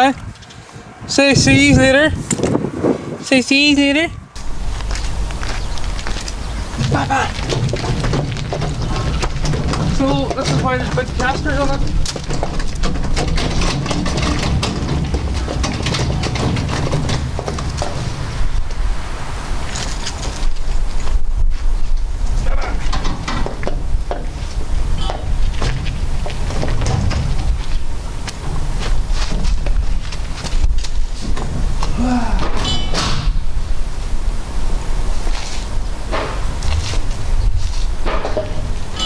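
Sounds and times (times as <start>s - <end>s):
wheels crunching over gravel: 4.4s - 32.8s, 33.4s - 39.0s
metal frame clicking and knocking: 6.8s - 18.3s, 22.7s - 24.4s, 25.0s - 30.6s.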